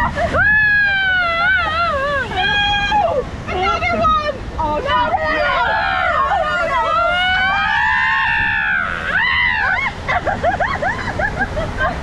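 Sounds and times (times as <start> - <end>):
woman screaming: 0.3 - 3.2, 5.4 - 10.0.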